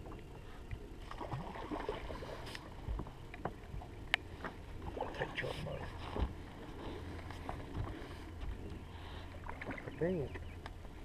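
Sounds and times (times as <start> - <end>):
boat engine hum: 0.0 - 11.0.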